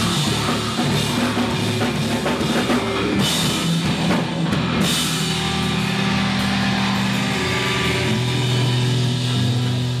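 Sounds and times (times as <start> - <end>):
rock band holding a chord: 0.0 - 10.0.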